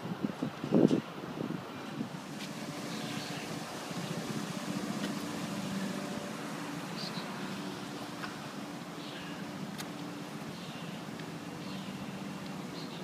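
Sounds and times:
motor engine droning: 2.1s - 13.0s.

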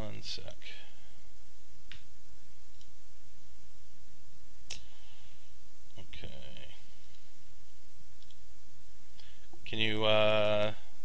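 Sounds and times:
line hiss and low hum: 0.0s - 11.0s.

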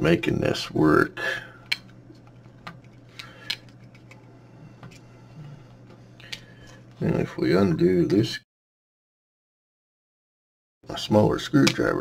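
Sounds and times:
low electrical hum: 0.0s - 8.4s, 10.9s - 12.0s.

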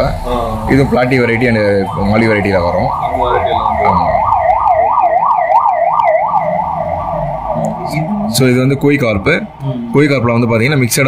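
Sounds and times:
electronic siren yelping: 0.6s - 10.4s.

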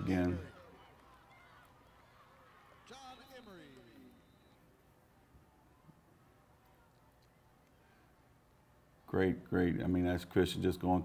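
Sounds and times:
faint indistinct voices: 0.0s - 9.1s.

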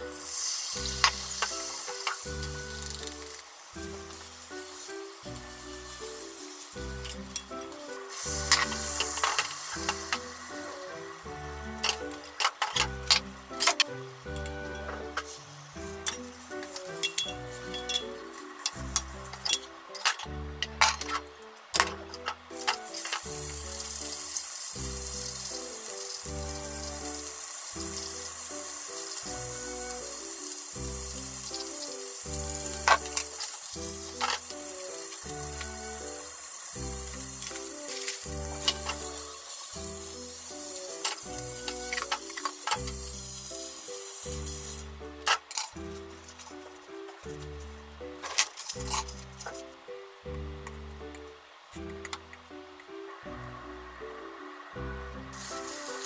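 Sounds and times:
background music with steady beat: 0.0s - 56.0s
sausages sizzling in oil: 0.0s - 56.0s
utensils clicking: 6.1s - 10.9s, 16.1s - 26.2s, 32.6s - 45.8s.

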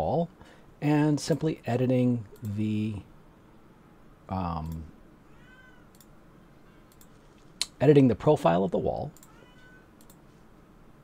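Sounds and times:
cat meowing: 5.3s - 5.9s, 9.3s - 9.9s
soft clicks: 5.9s - 6.2s, 6.9s - 7.8s, 9.1s - 9.4s, 10.0s - 10.3s.

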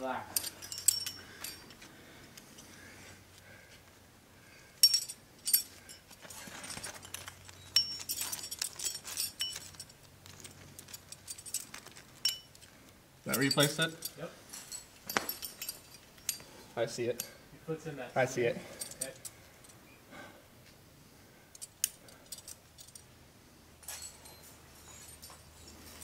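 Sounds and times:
metal climbing gear clinking: 0.0s - 3.6s, 4.5s - 17.5s, 18.2s - 19.9s, 21.3s - 23.2s, 23.8s - 26.0s.

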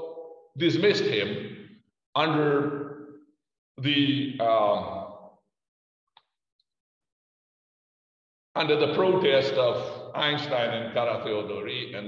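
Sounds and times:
man's voice: 3.8s - 5.0s.

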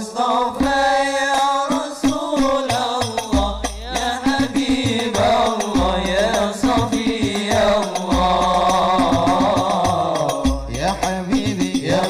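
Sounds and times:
male voices chanting: 0.0s - 12.0s
frame drums: 0.6s - 12.0s.

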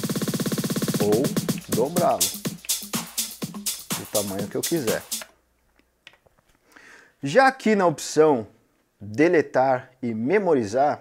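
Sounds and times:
electronic dance track: 0.0s - 5.3s.

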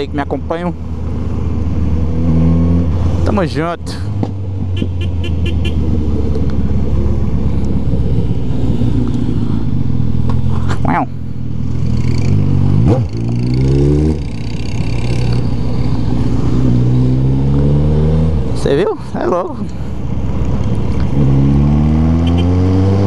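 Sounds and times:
motorcycle engine accelerating: 0.8s - 3.3s, 4.1s - 18.7s, 20.1s - 23.0s.

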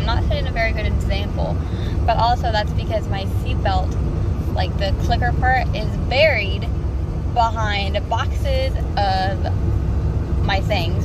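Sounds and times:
woman talking: 0.0s - 6.7s, 7.4s - 9.5s, 10.4s - 11.0s
car cabin road rumble: 0.0s - 11.0s.

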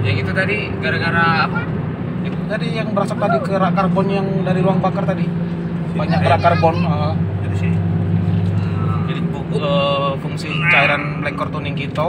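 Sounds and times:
car engine droning in cabin: 0.0s - 12.0s.

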